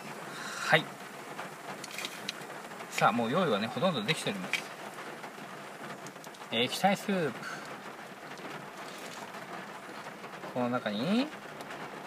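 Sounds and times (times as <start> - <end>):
heavy rain falling: 0.0 - 12.0.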